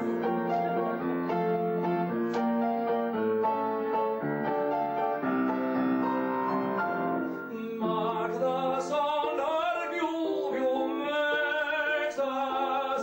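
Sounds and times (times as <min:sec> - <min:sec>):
grand piano playing: 0:00.0 - 0:13.0.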